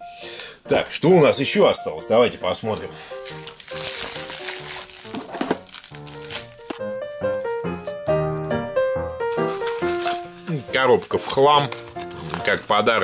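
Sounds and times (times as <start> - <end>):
background music with short notes: 0.0 - 13.0
plastic bag tearing and crinkling: 3.1 - 6.9, 9.3 - 13.0.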